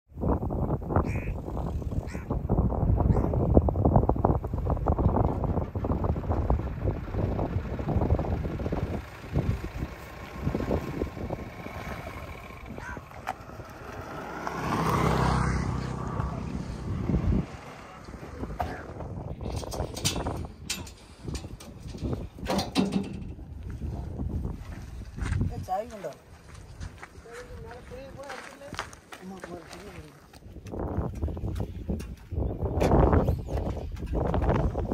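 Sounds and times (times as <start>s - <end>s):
truck rattling over dirt road: 3.7s - 25.5s, 30.9s - 34.9s
pickup truck engine running: 4.0s - 14.2s
knocks and clatter: 19.4s - 23.6s.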